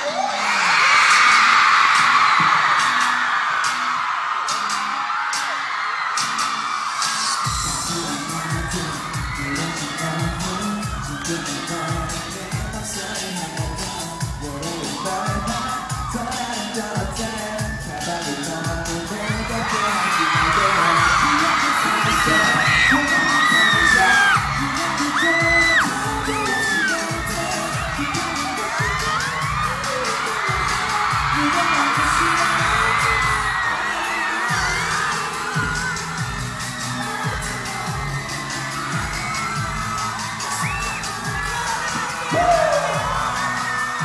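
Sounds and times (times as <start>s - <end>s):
fans screaming and whooping: 0.0s - 44.0s
live pop music with singer: 0.0s - 44.0s.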